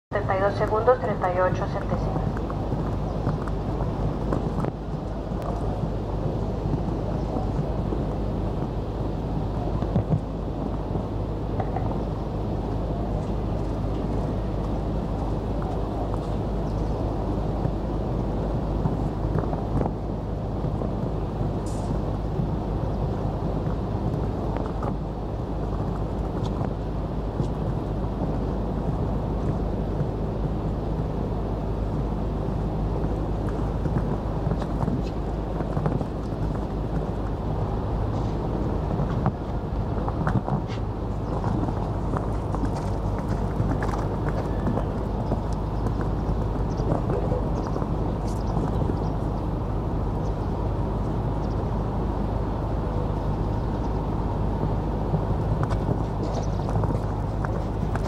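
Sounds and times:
low background rumble: 0.0s - 58.0s
hoofbeats on sand: 0.6s - 58.0s.

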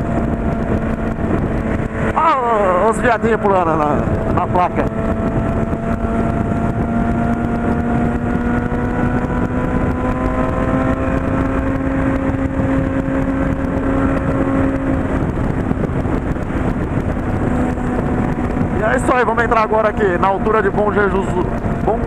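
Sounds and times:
motorcycle engine cruising: 0.0s - 22.0s
wind noise on microphone: 0.0s - 22.0s.

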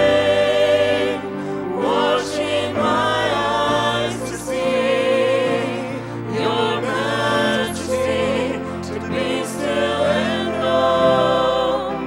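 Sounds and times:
instrumental accompaniment: 0.0s - 12.0s
voices singing worship song: 0.0s - 12.0s.

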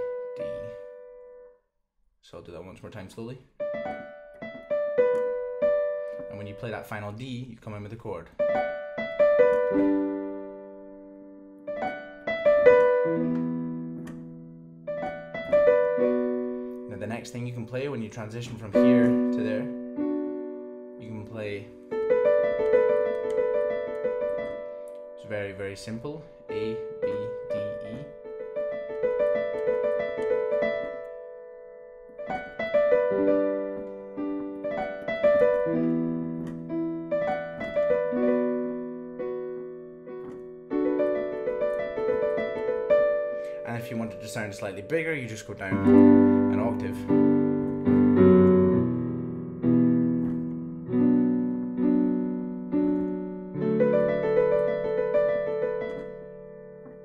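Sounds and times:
digital piano playing slowly: 0.0s - 1.6s, 2.7s - 57.0s.

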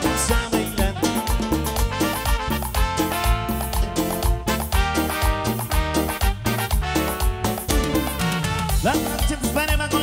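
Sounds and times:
live band playing dance music: 0.0s - 10.0s.

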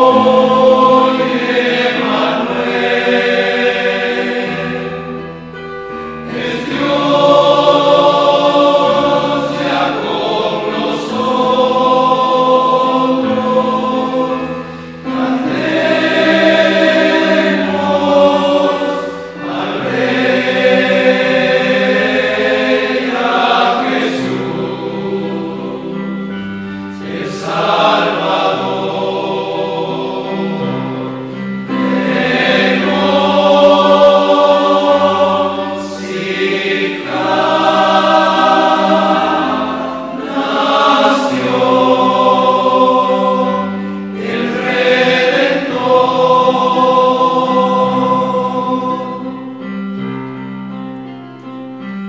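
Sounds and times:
choir singing a slow hymn: 0.0s - 50.5s.

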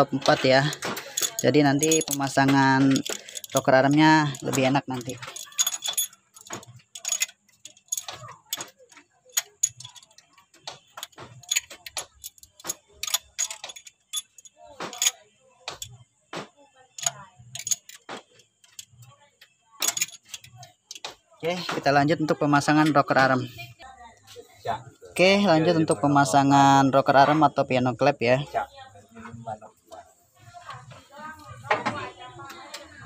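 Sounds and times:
metal pushrods clinking: 0.0s - 16.0s, 16.9s - 19.1s, 19.8s - 21.2s.

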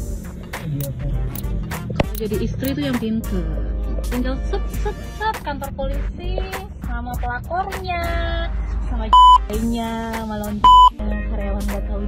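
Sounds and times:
background music: 0.0s - 12.0s
censor bleep: 9.2s - 9.5s, 10.6s - 11.0s.

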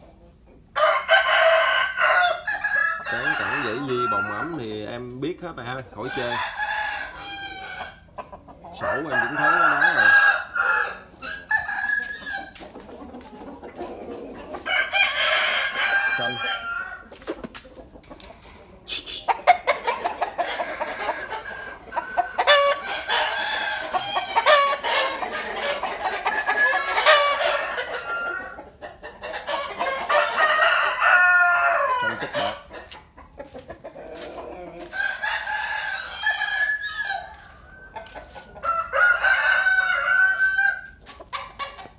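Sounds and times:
roosters crowing: 0.6s - 17.3s, 18.0s - 41.9s.

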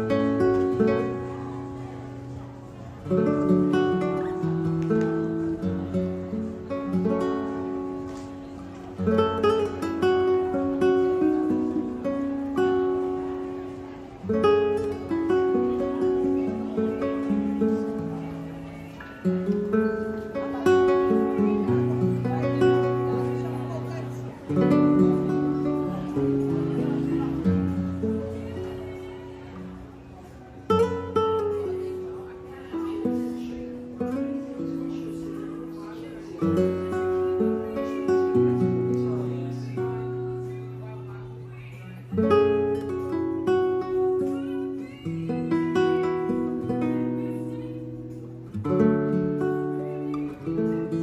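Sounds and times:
acoustic guitar music: 0.0s - 51.0s.

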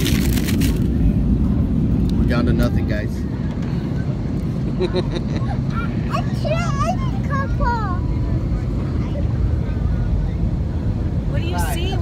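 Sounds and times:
airliner cabin rumble: 0.0s - 12.0s.

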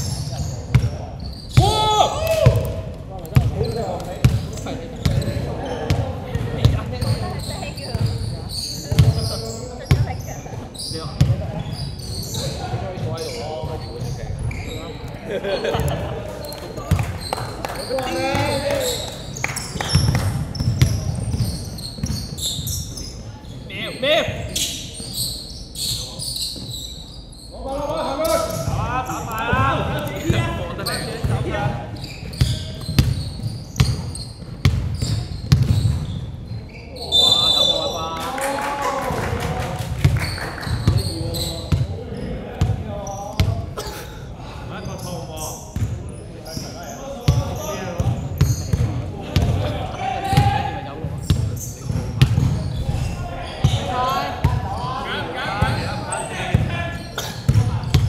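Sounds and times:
basketball bouncing on court: 0.0s - 10.3s, 11.1s - 15.0s, 16.8s - 17.3s, 18.1s - 23.1s, 31.2s - 36.4s, 40.0s - 42.0s, 45.8s - 46.0s, 47.2s - 54.8s, 55.6s - 58.0s
players calling out: 1.2s - 33.0s, 46.4s - 58.0s.

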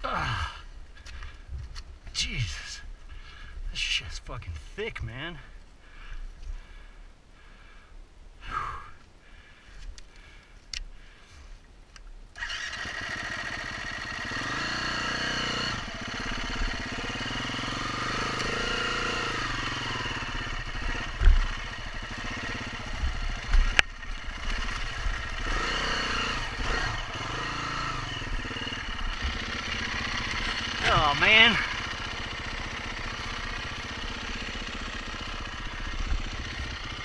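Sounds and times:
dirt bike engine revving: 12.4s - 37.0s.

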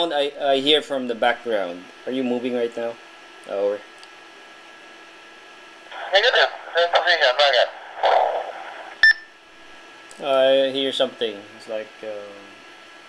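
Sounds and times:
faint radio hiss: 5.3s - 12.8s
voice over radio: 5.9s - 8.8s.

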